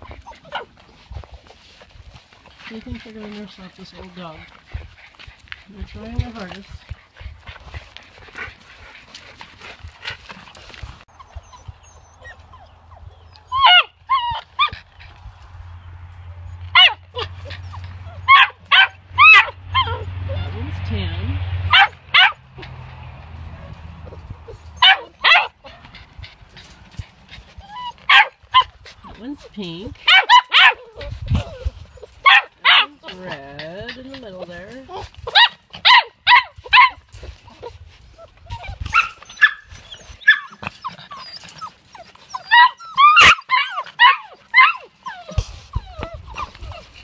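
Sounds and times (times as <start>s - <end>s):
puppies yipping: 0.0s - 1.2s, 2.3s - 47.0s
puppies scuffling and scratching: 0.0s - 47.0s.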